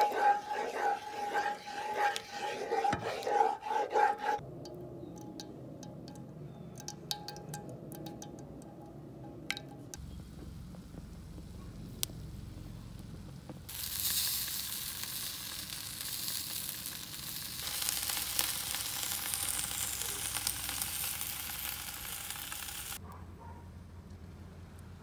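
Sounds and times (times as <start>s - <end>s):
food sizzling on a grill: 12.0s - 23.0s.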